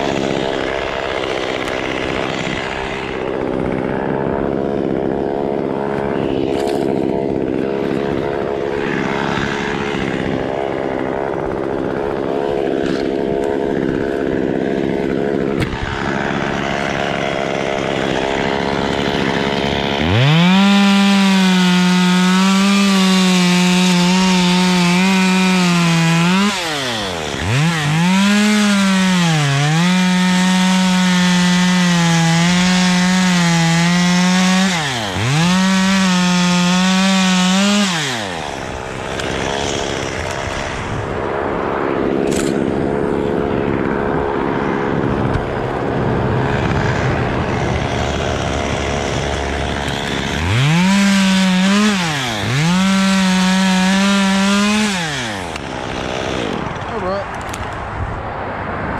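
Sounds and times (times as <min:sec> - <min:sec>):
chainsaw cutting: 0:00.0 - 0:57.8.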